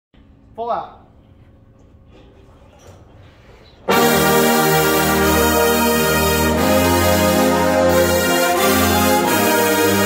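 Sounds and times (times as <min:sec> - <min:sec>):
brass section chord: 0:03.8 - 0:10.0.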